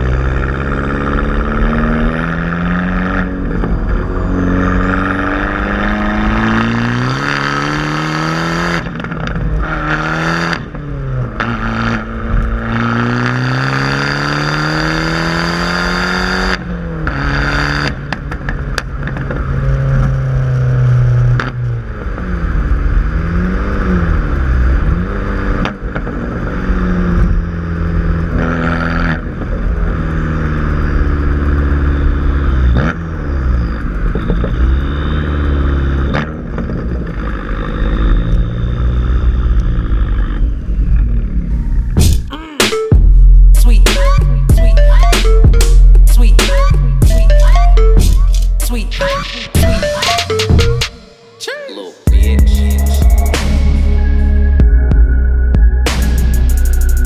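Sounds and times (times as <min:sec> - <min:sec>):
car engine revving through gears: 0:00.0 - 0:42.0.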